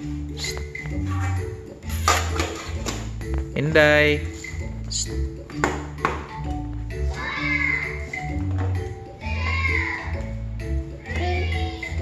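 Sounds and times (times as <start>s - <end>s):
melodic background music: 0.0s - 12.0s.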